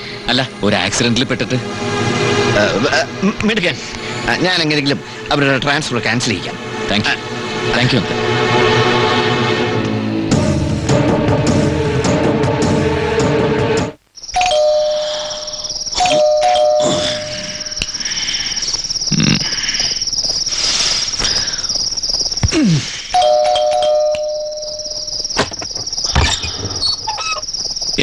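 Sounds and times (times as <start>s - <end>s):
crickets chirping: 0.0s - 12.0s, 14.0s - 28.0s
two-tone doorbell chime: 14.4s - 17.8s, 23.2s - 25.1s.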